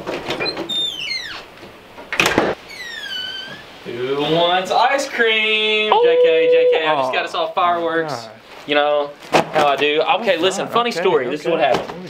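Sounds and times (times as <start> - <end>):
door hinge squeaking: 0.4 - 1.5, 2.6 - 3.7.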